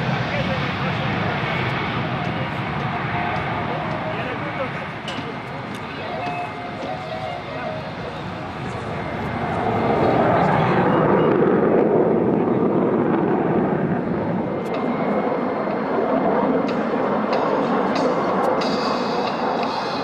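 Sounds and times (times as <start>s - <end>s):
jet engines roaring: 0.0s - 20.0s.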